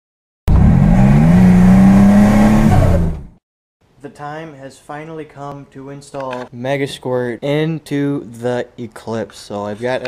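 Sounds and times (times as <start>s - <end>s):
car engine revving: 0.5s - 3.4s.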